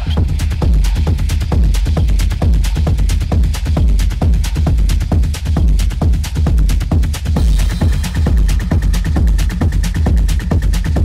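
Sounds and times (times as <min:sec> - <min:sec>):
deep bass: 0:00.0 - 0:11.0
hi-hat ticks: 0:00.0 - 0:11.0
techno kick drum: 0:00.0 - 0:11.0.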